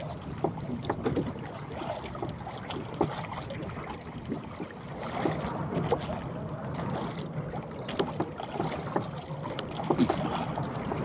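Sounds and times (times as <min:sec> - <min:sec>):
sea water moving around boat: 0:00.0 - 0:11.0.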